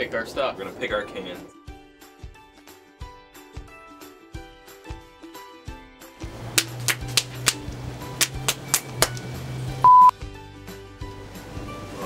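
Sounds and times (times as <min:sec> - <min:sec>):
background music: 0:00.0 - 0:12.0
loud pure beep tone: 0:09.8 - 0:10.2.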